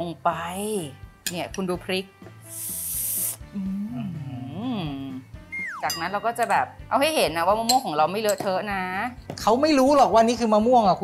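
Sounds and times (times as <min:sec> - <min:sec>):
soft background music: 0:00.0 - 0:11.0
short hiss: 0:02.4 - 0:03.4
person humming: 0:02.6 - 0:05.3.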